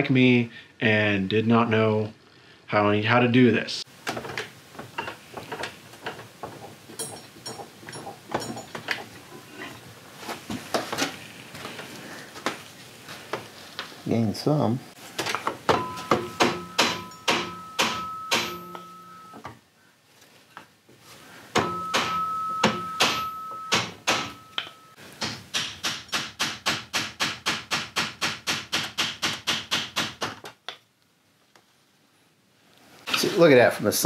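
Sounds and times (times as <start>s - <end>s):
hammer tapping on wooden dowel: 21.6s - 30.2s.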